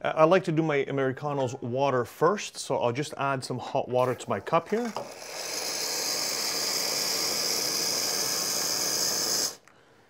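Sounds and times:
hissing water and steam: 0:04.0 - 0:09.6.

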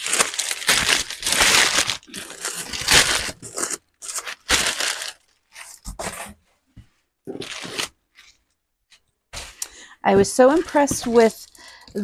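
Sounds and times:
packing paper rustling: 0:00.0 - 0:06.3, 0:07.3 - 0:08.4.

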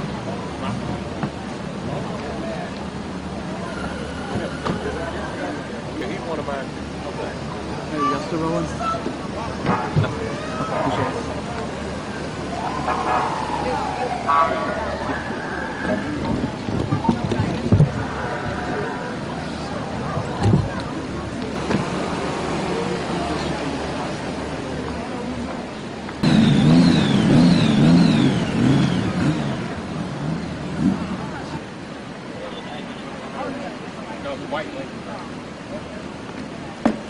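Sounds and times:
people talking outdoors: 0:00.0 - 0:37.0
wailing siren: 0:12.4 - 0:16.3.

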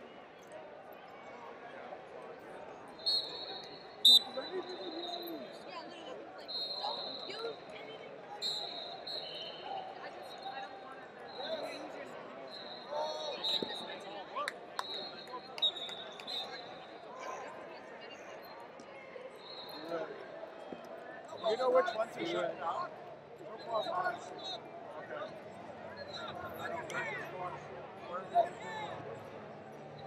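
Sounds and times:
referee whistle blasts: 0:03.0 - 0:05.4, 0:06.4 - 0:07.7, 0:08.4 - 0:10.5, 0:12.5 - 0:14.0, 0:14.8 - 0:17.0, 0:19.4 - 0:19.9.

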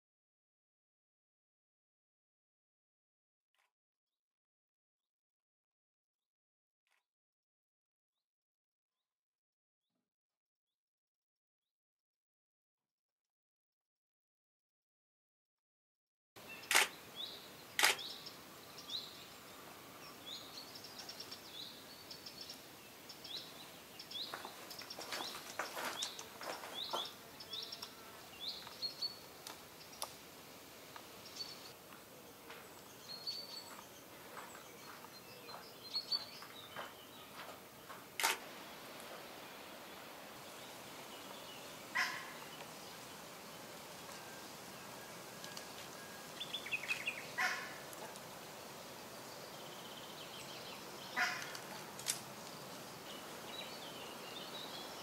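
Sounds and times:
small birds chirping: 0:16.4 - 0:55.0
sharp clicks: 0:16.6 - 0:16.9, 0:17.8 - 0:18.1, 0:38.2 - 0:38.4.

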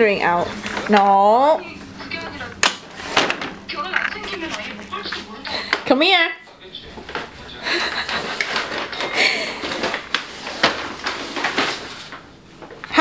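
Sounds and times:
paper bag rustling on tile floor: 0:00.0 - 0:05.9, 0:06.6 - 0:13.0.

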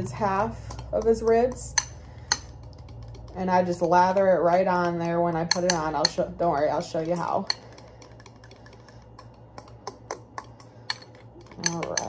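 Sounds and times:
spoon clicking against glass: 0:07.5 - 0:12.0.

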